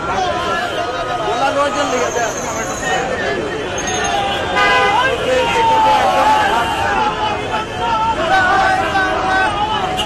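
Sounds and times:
road traffic: 0.0 - 10.0
street crowd chatter: 0.0 - 10.0
vehicle horn tooting: 4.0 - 7.0, 8.2 - 10.0.

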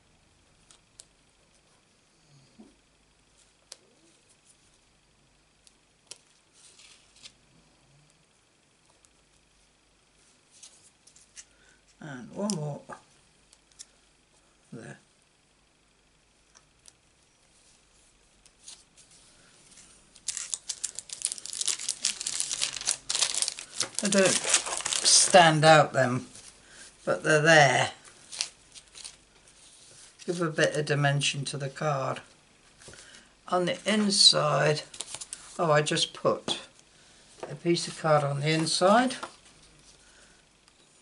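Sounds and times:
plastic sheet crinkling: 19.8 - 26.6, 27.8 - 30.8, 34.8 - 35.6.

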